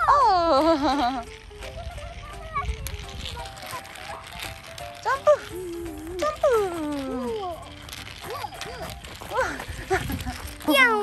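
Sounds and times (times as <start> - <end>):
toy car wheels rattling on concrete: 0.0 - 11.0.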